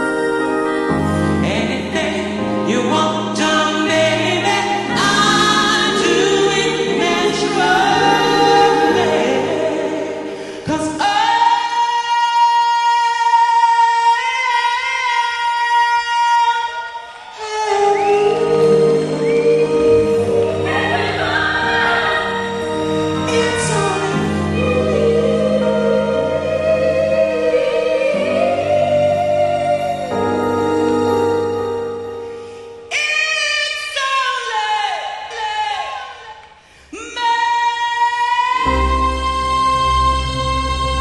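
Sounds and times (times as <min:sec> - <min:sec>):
backing music: 0:00.0 - 0:11.9, 0:17.3 - 0:33.0, 0:38.6 - 0:41.0
pop singer singing into microphone: 0:00.0 - 0:31.9, 0:32.9 - 0:41.0.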